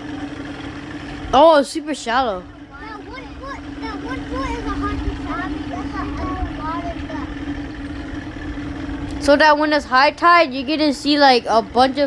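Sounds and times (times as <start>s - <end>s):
faint voices: 0.0s - 12.0s
motorboat engine running: 0.0s - 12.0s.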